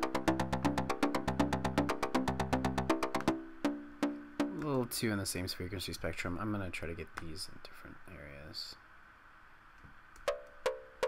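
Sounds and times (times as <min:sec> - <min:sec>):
plucked synthesizer notes: 0:00.0 - 0:04.9.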